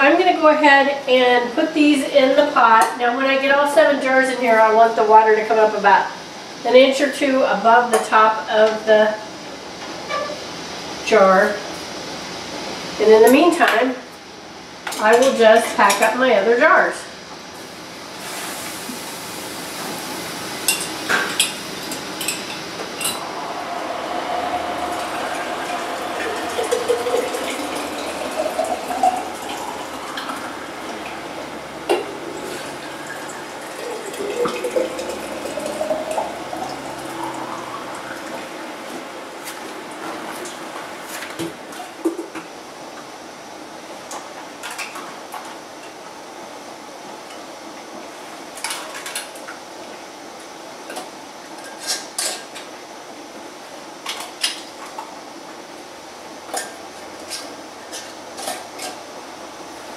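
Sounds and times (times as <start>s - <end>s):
water pouring into glass jars: 23.0s - 38.4s.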